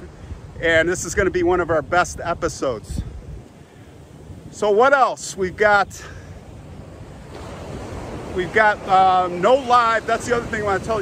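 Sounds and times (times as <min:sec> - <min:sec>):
ocean surf on sandy beach: 0:00.0 - 0:11.0
wind rumbling on microphone: 0:00.0 - 0:11.0.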